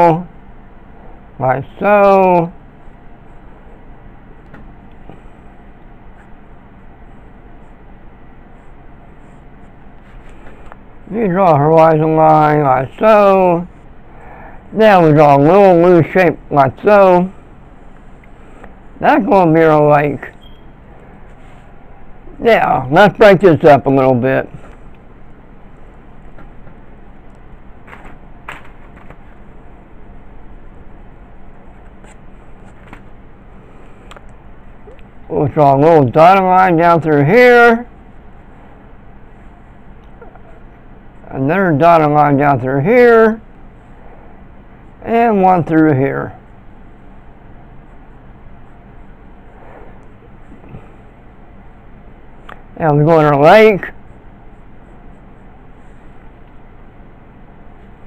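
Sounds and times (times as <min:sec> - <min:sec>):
low hum: 0:00.0 - 0:58.0.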